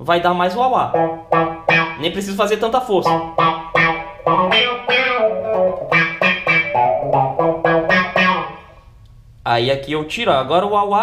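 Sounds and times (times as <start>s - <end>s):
electric guitar with wah effect: 0.9s - 2.2s, 3.0s - 9.0s.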